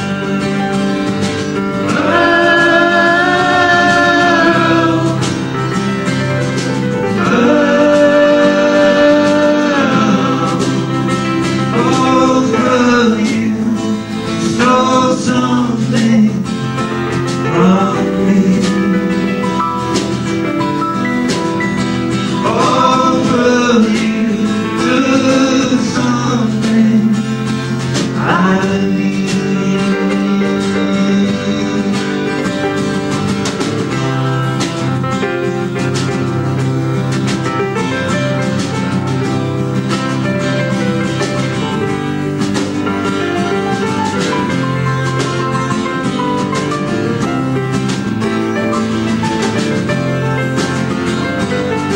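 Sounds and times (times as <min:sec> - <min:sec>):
acoustic guitar: 0:00.0 - 0:51.9
drum kit: 0:00.0 - 0:51.9.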